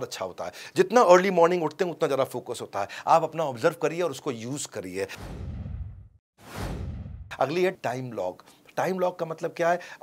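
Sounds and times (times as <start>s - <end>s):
whoosh sound effect: 5.1s - 7.4s.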